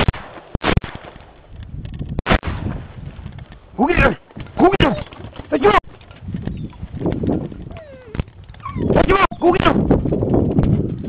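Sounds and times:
handling noise: 2.8 - 11.0
dog whining: 7.7 - 9.4.

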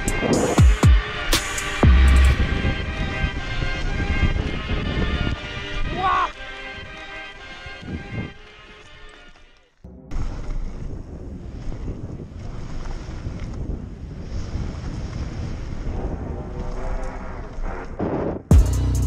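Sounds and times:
wind noise on microphone: 0.0 - 9.0, 10.1 - 18.6
background music: 0.0 - 10.4, 18.0 - 19.0
bike tyres rumbling over gravel: 3.0 - 18.5.

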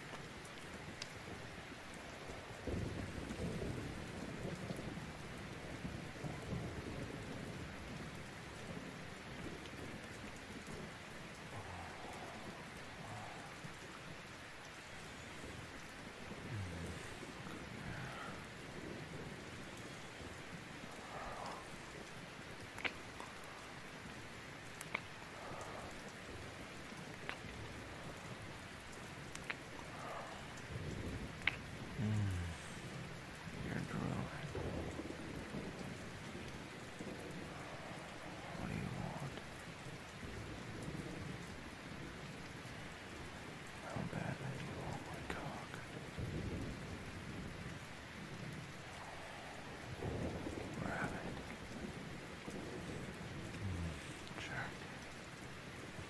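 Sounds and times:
steady rain: 0.0 - 56.0
thunder rolling: 46.1 - 54.4.

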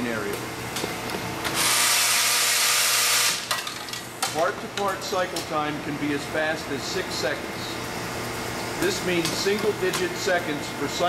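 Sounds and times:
low machine hum: 0.0 - 11.0
grinder hissing: 1.5 - 3.5.

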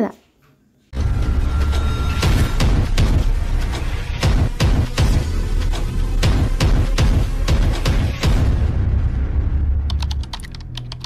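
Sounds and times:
low rumbling boom: 1.0 - 10.4
keyboard typing clicks: 9.9 - 11.0.

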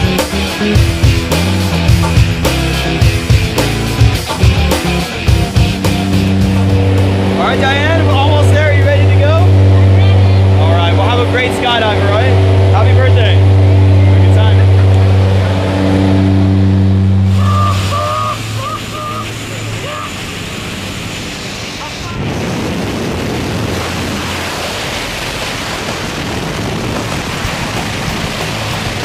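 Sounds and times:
rushing wind: 0.0 - 29.0
airplane engine drone in cabin: 6.0 - 29.0
voices shouting: 17.3 - 20.4.

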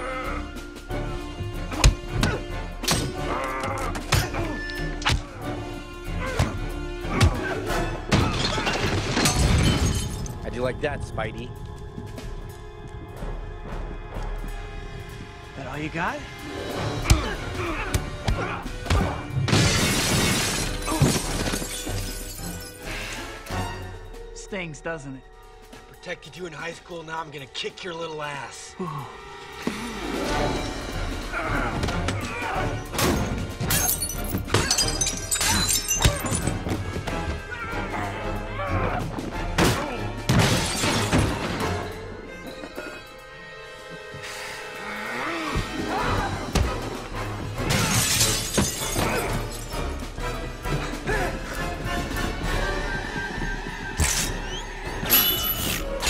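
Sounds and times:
dramatic film score music: 0.0 - 56.0
glass panes shattering: 8.1 - 10.4, 19.5 - 22.8, 33.0 - 36.6, 40.3 - 41.6, 47.7 - 49.8, 55.1 - 55.9.

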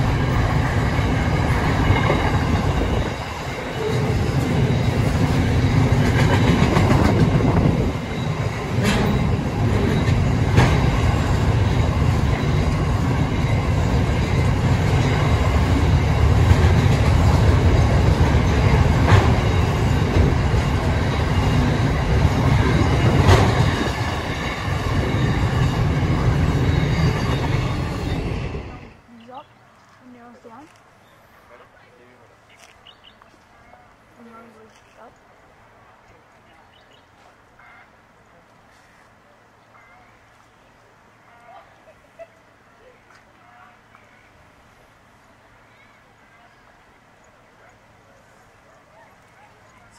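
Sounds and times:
sharp clacks of train wheels: 0.0 - 28.7
train wheels rumbling on rails: 0.0 - 30.7.

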